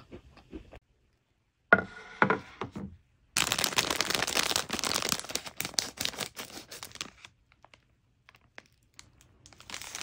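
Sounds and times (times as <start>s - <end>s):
plastic bag crinkling: 3.4s - 10.0s.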